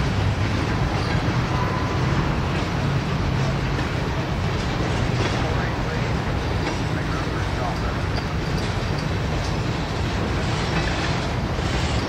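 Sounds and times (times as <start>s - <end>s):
freight train wheels on rails: 0.0s - 12.0s.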